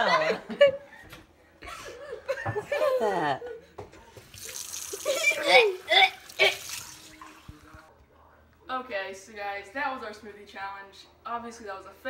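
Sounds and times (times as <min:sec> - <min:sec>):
tap water running into sink: 0:04.2 - 0:07.9.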